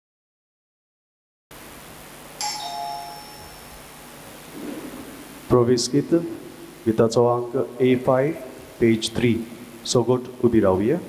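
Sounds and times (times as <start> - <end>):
two-note ding-dong chime: 2.4 - 3.9.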